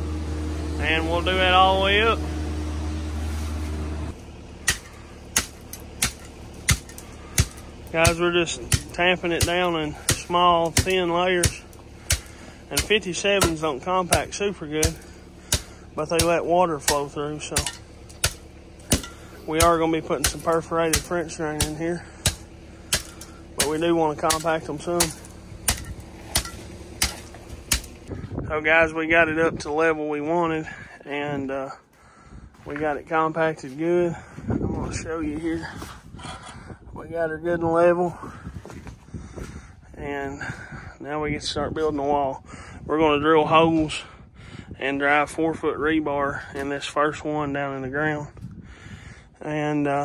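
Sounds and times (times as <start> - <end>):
low hum: 0.0 - 47.2
hand tamper pounding gravel: 4.1 - 28.1.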